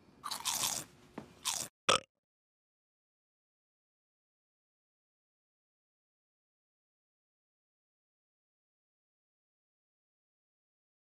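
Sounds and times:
crunchy biting and chewing: 0.2s - 1.7s.

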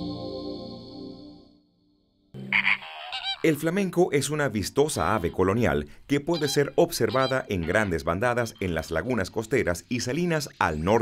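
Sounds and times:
soft theme music: 0.0s - 2.8s
flamingos croaking and honking: 2.4s - 3.7s, 5.0s - 8.5s.

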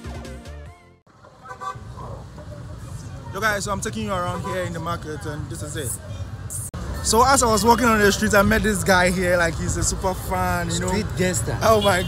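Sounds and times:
street traffic rumbling: 1.0s - 12.0s
car horn toot: 11.6s - 12.0s.

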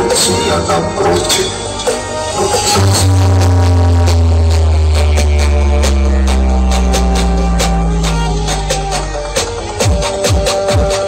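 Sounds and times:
loud dance music: 0.0s - 11.0s
heavy bass drone: 2.3s - 10.2s
sharp percussion hits: 2.6s - 10.8s.

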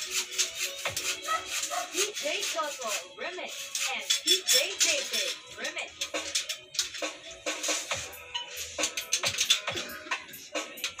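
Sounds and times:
dance music with drum beat: 0.0s - 11.0s.

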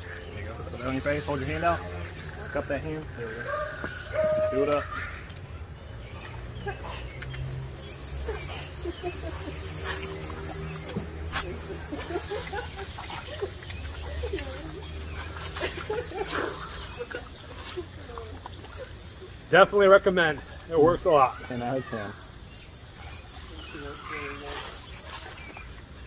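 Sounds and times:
garden hose spraying water: 0.0s - 26.0s.

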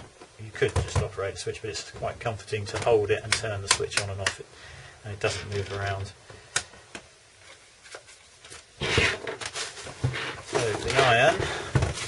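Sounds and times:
bubble wrap crinkling: 7.4s - 12.0s.

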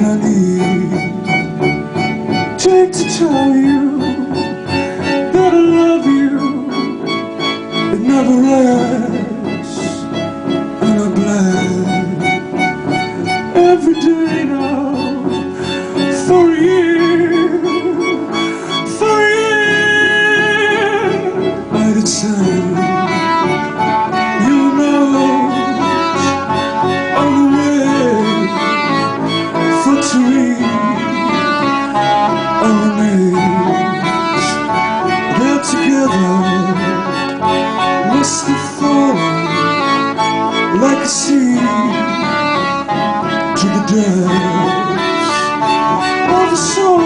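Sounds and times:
chamber ensemble playing: 0.0s - 47.0s.

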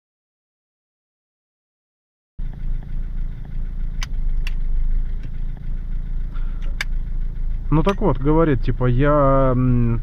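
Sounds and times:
car engine idling: 2.4s - 10.0s
sharp clicks: 4.0s - 5.4s.

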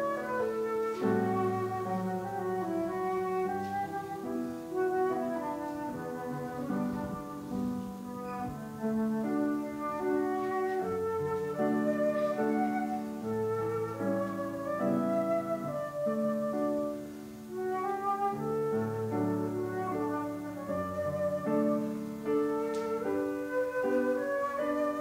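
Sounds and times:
flute melody: 0.0s - 25.0s
lower-pitched accompaniment: 0.0s - 25.0s.

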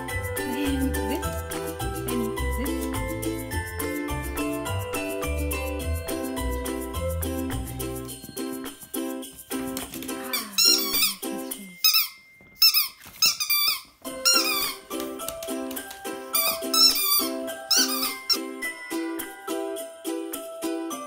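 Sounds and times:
strummed ukulele music: 0.0s - 11.8s, 14.1s - 21.0s
squeaky toy squeaks: 10.3s - 15.0s, 16.2s - 18.7s.

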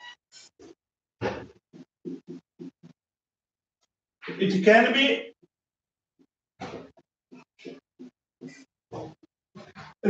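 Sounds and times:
marker scratching on whiteboard: 1.3s - 3.0s, 6.7s - 9.8s.

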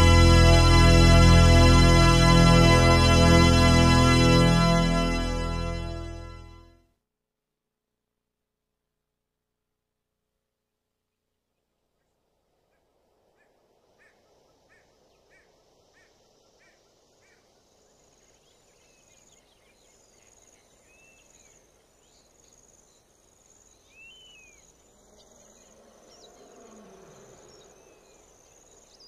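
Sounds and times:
insects chirring: 13.7s - 29.0s.

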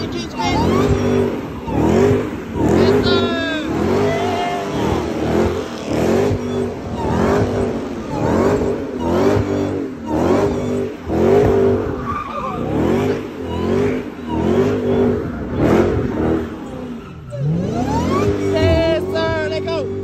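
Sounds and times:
car engine revving: 0.0s - 20.0s
tyres squealing: 0.0s - 20.0s.

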